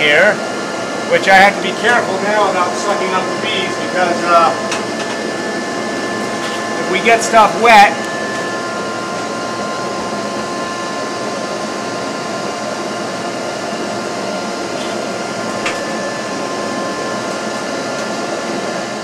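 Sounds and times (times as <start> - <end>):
motor whine: 0.0 - 19.0
vacuum suction rushing: 2.0 - 11.2.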